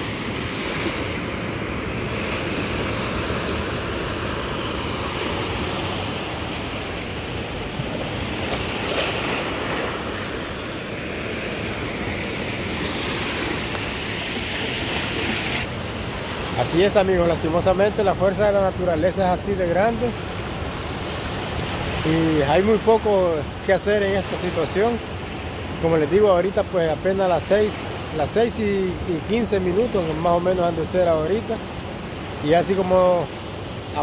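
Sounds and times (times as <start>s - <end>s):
ocean surf rushing: 0.0s - 34.0s.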